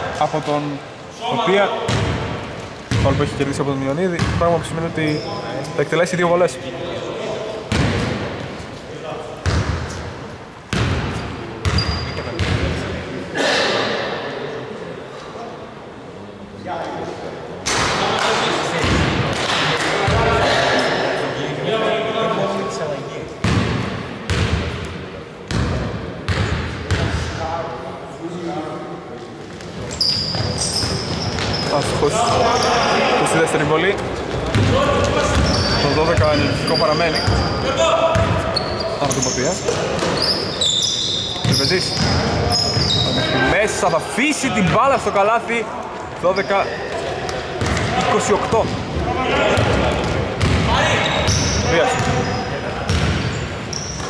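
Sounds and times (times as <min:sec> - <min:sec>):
voices talking: 0:29.8 - 0:54.0.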